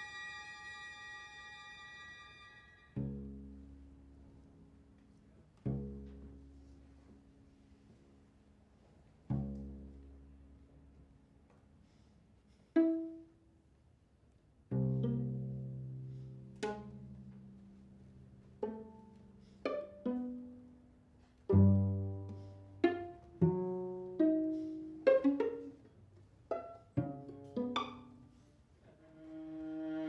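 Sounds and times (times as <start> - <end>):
sustained bowed string chord: 0.0 - 3.6
plucked string quartet notes: 0.0 - 4.4, 5.0 - 7.2, 9.3 - 11.0, 12.8 - 13.5, 14.7 - 30.0.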